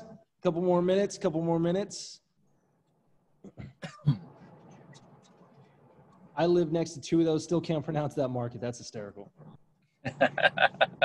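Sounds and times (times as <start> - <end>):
man coughing: 3.4 - 4.3.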